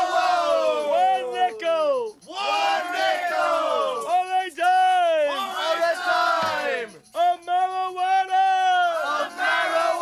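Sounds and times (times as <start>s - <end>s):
men yelling together: 0.0s - 6.9s.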